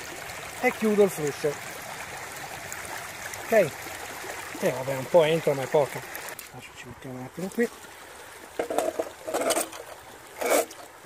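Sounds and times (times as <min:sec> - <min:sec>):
short water splashes: 0:00.0 - 0:11.0
water trickling through sluice box: 0:00.0 - 0:11.0.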